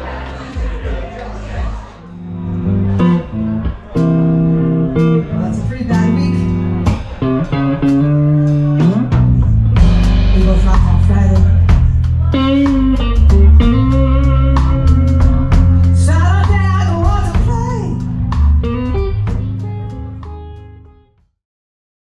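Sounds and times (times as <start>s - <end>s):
bass guitar: 0.0s - 21.2s
electric guitar chords: 2.0s - 21.2s
drum hits: 8.5s - 20.4s.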